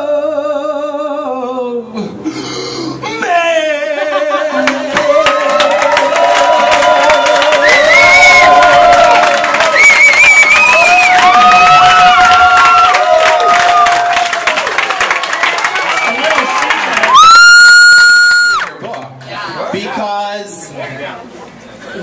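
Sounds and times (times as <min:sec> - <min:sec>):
audience cheering and whooping: 0:04.6 - 0:18.7
rapid clapping: 0:04.9 - 0:17.2.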